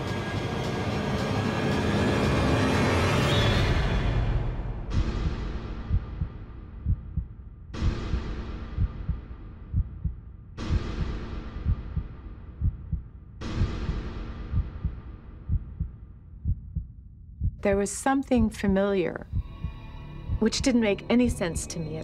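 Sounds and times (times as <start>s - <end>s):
low heartbeat thumps: 4.9s - 22.0s.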